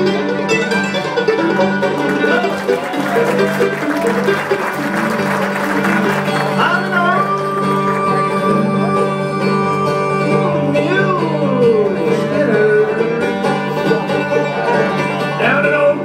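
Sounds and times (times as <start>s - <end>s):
bluegrass band playing: 0.0s - 16.0s.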